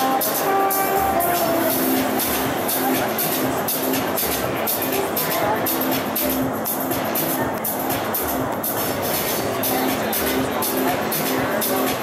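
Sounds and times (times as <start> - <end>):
loud electronic music: 0.0 - 12.0.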